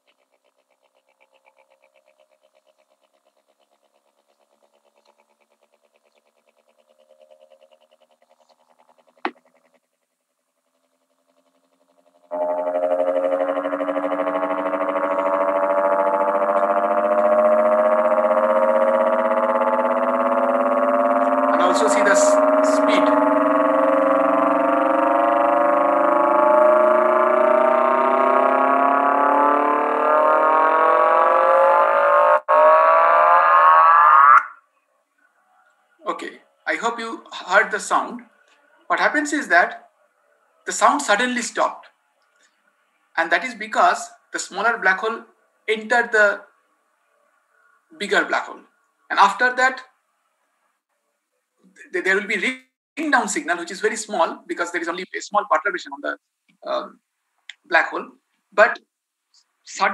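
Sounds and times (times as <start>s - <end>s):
buzzing tone rising in pitch: 0.0s - 50.7s.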